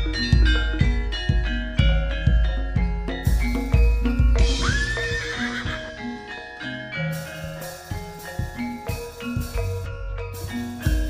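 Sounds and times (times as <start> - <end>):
drum strokes: 0.0 - 6.4, 7.0 - 11.0
struck metal gamelan notes: 0.0 - 11.0.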